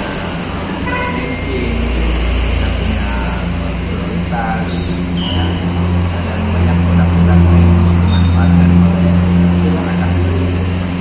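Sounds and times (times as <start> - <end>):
road traffic engine rumble: 0.0 - 11.0.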